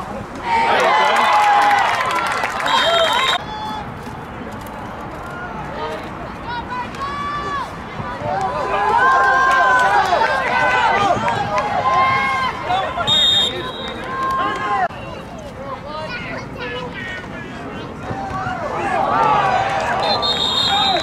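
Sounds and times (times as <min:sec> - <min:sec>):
referee whistle: 0:02.6 - 0:03.5, 0:12.8 - 0:14.1, 0:20.0 - 0:21.0
spectators shouting: 0:05.3 - 0:14.9, 0:18.0 - 0:21.0.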